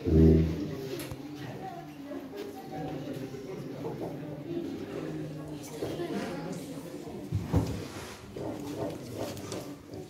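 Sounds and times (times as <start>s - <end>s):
faint murmuring voices: 0.0s - 10.0s.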